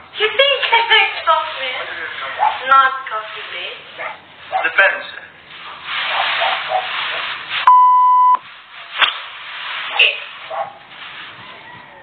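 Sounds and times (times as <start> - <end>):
censor bleep: 7.7 - 8.4.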